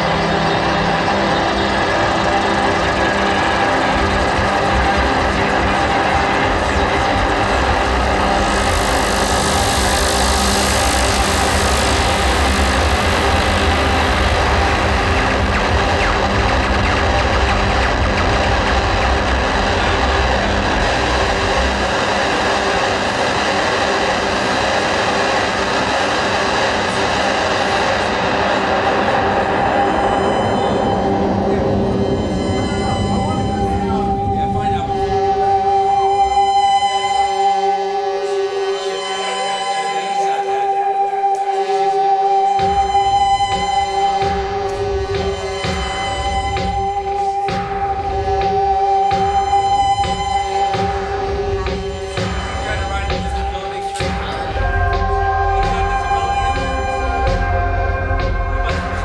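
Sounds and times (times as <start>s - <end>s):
heavy low rumble: 0.0s - 36.4s, 42.7s - 59.0s
electronic synthesizer drone: 0.0s - 59.0s.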